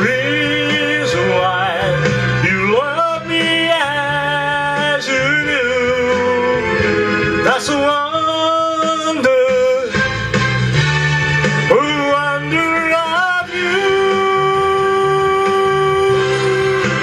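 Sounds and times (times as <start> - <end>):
man singing into a microphone: 0.0 - 6.8, 7.4 - 10.0, 11.7 - 17.0
electronic keyboard accompaniment: 0.0 - 17.0.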